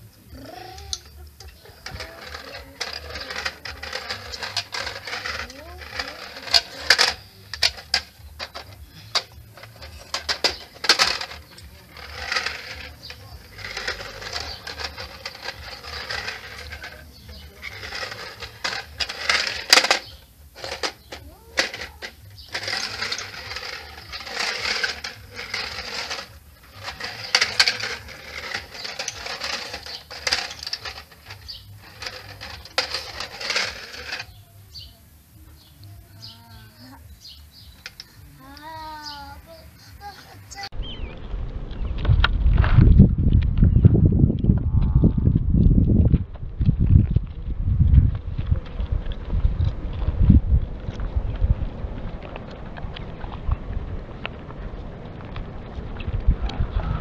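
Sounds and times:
plastic toy rattling on concrete: 0.3s - 40.8s.

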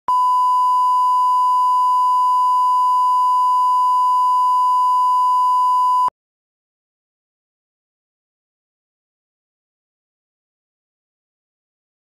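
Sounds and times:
steady test tone beep: 0.1s - 6.1s.

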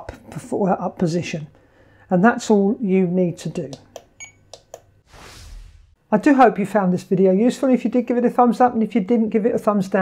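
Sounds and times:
soft rushing noise: 5.0s - 6.0s.

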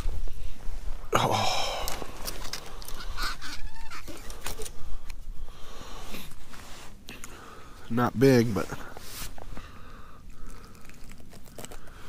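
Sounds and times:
sharp clicks and rustles: 1.8s - 3.1s.

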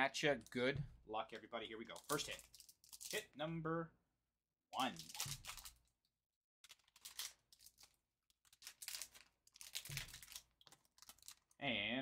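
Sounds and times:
foil wrapper crinkling and tearing: 1.9s - 3.2s, 4.8s - 5.8s, 6.6s - 11.6s.

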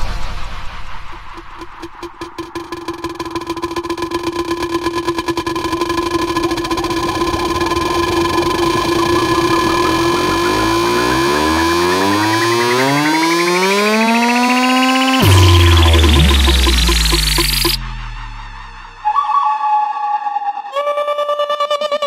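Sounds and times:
rising pitch sweep: 0.0s - 21.0s
fast drum roll: 0.7s - 17.8s
held synth tones: 1.6s - 22.0s.

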